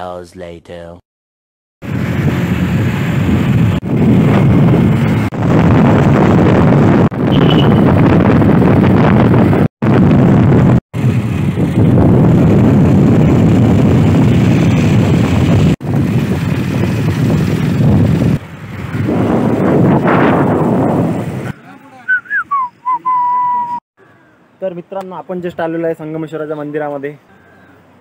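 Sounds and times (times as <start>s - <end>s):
wind buffeting microphone: 1.8s - 21.5s.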